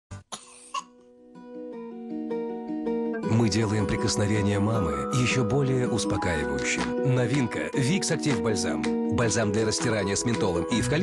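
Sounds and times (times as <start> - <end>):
child coughing: 0.3 - 1.0
soft gentle music: 0.3 - 11.0.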